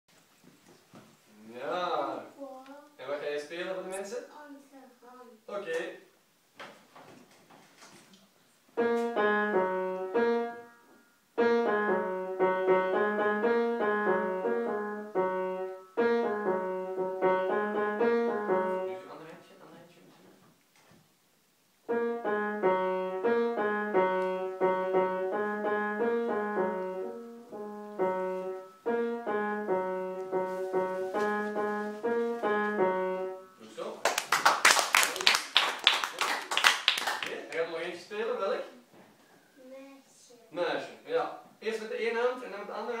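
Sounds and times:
child playing piano: 8.8 - 19.0, 21.9 - 33.6
applause: 34.0 - 37.6.

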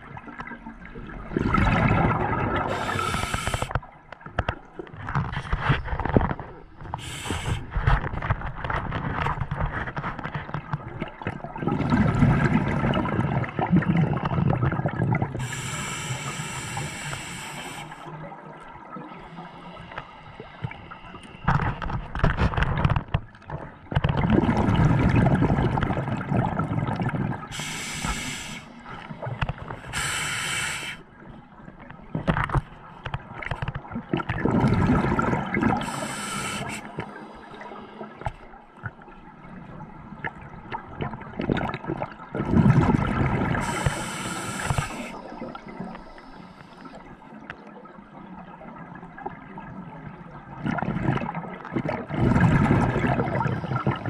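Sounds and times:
gurgling exhaust bubbles: 1.1 - 3.4, 11.2 - 15.4, 23.9 - 27.7, 34.0 - 36.1, 41.0 - 44.8, 50.6 - 54.0
hissing regulator inhalations: 2.7 - 3.7, 7.0 - 7.7, 15.4 - 18.1, 27.5 - 28.8, 29.8 - 31.1, 35.8 - 38.1, 43.6 - 47.0.

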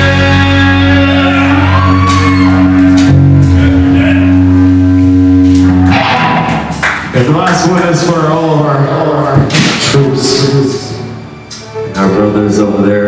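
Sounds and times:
guitar and bass chord: 0.0 - 9.2
cymbal crashes: 3.4 - 7.1.

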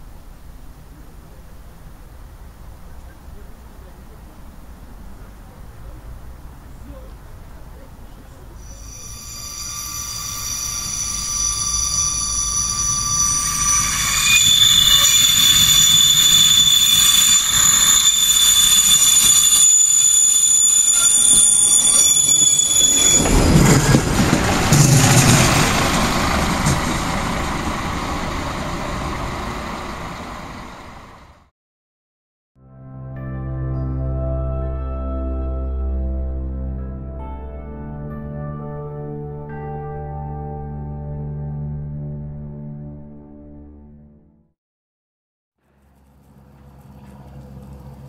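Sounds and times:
railcar rolling rumble: 0.1 - 31.5, 45.7 - 48.0
train wheels squealing: 8.6 - 31.4.

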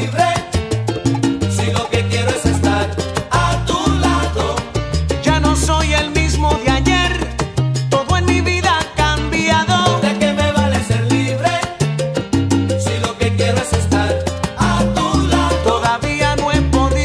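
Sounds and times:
instrumental salsa music: 0.0 - 17.0.

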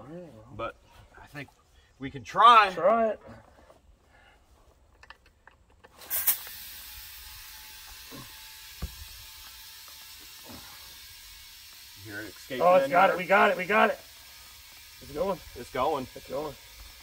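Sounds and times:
compressed air hissing into tire: 6.0 - 17.0.

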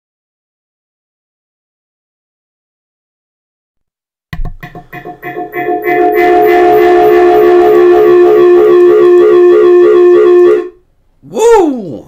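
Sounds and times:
loud sustained pulsing chord: 5.2 - 10.7.

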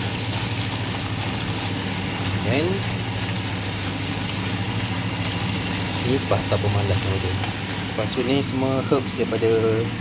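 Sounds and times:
kitchen appliance humming: 0.0 - 10.0.

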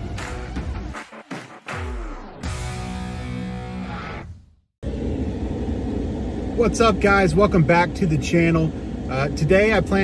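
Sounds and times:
guitar music: 2.4 - 4.3.

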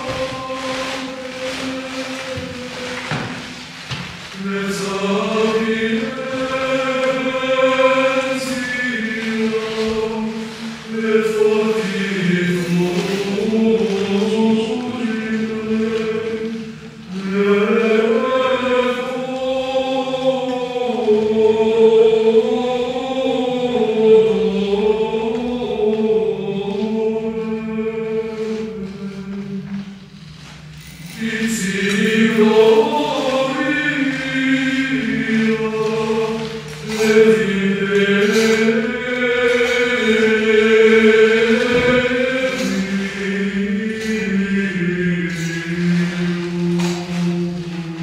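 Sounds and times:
voices singing liturgical chant: 0.0 - 48.0.

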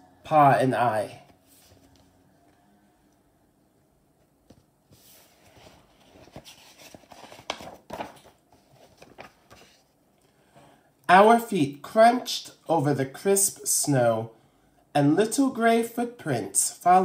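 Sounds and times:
book pages turning: 1.2 - 2.2, 4.4 - 9.9.

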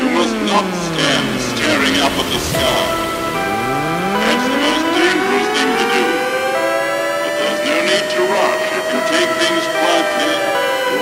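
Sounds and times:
air-raid siren wail: 0.0 - 11.0
sustained synth chords: 0.0 - 11.0
sharp percussion hits: 0.6 - 7.5.

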